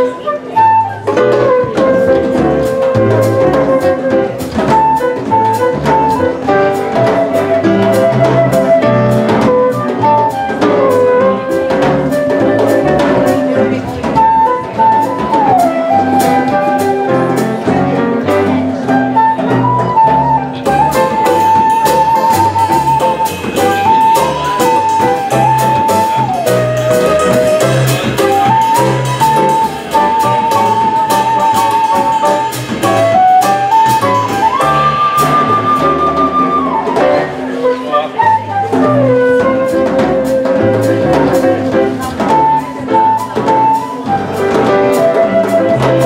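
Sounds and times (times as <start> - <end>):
bass: 0.0 - 46.0
drum kit with cymbals: 0.0 - 46.0
flute melody: 0.0 - 46.0
piano chords: 0.0 - 46.0.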